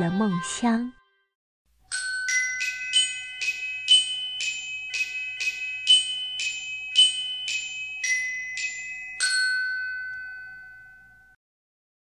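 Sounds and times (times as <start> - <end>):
bell-like chime note: 1.9 - 11.4.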